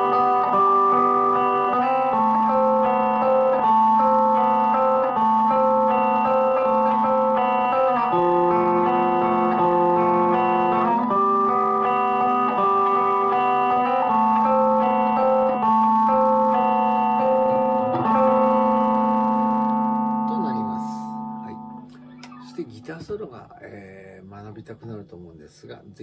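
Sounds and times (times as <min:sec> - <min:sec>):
electric guitar arpeggios: 0:00.0 - 0:24.1.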